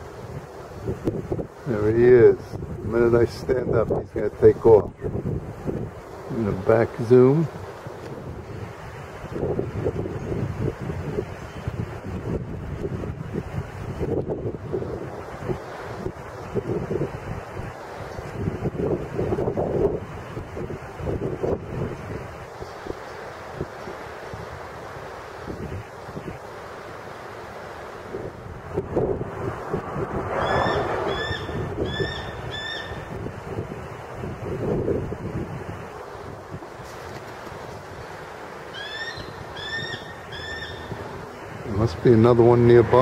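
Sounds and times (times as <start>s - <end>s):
wind gusting on microphone: 0.0s - 43.0s.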